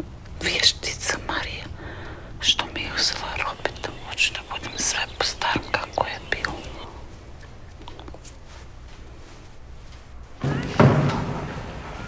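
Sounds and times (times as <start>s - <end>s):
woman whispering: 0.4s - 6.9s.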